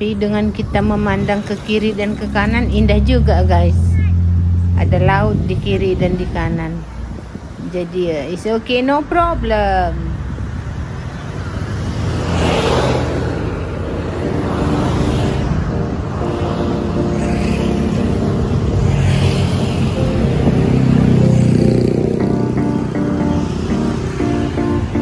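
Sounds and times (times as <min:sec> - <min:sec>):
cars and motorcycles passing: 0:00.0 - 0:25.0
background music: 0:13.6 - 0:25.0.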